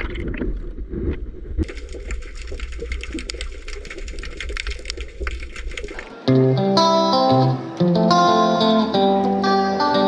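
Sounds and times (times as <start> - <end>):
underwater crackle of tiny clicks: 1.6 - 6.0.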